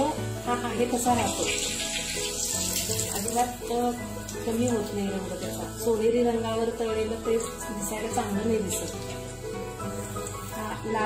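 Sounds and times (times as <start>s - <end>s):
background music: 0.0s - 11.0s
food sizzling in hot oil: 0.0s - 11.0s.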